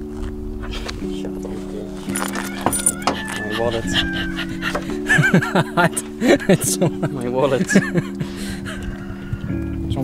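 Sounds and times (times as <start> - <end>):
background music with held chords: 0.0 - 10.0.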